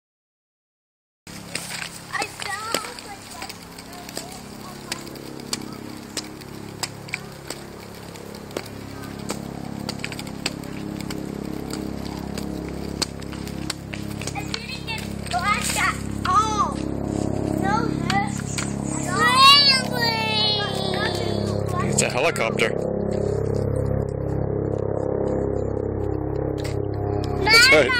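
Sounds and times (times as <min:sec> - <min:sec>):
kick scooter clicking: 0:01.3 - 0:17.0, 0:17.6 - 0:22.2
helicopter droning hum: 0:01.3 - 0:27.9.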